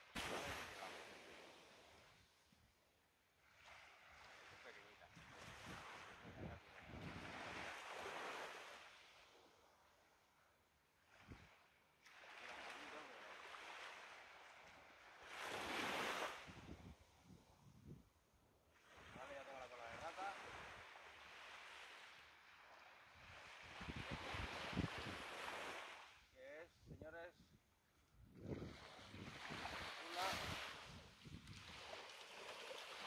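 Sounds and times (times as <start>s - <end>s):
surf washing onto beach: 0.0s - 2.1s, 12.1s - 14.5s, 19.0s - 26.2s, 28.4s - 33.0s.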